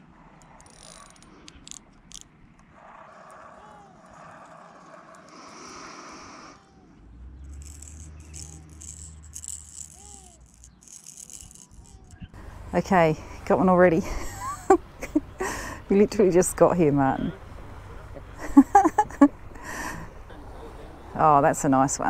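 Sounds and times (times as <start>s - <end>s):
fishing lure rattle clicking: 0.4s - 2.3s, 7.4s - 12.3s
fishing tackle clicking: 0.4s - 2.7s, 7.4s - 12.3s.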